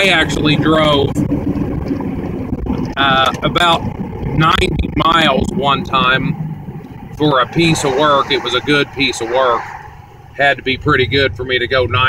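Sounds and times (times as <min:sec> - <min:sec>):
pickup truck low rumble: 0:00.0 - 0:12.0.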